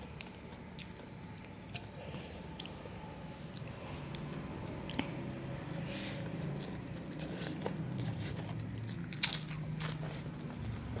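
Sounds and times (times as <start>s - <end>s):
close-up chewing with crunches: 0.0s - 11.0s
steady low hum: 0.0s - 11.0s.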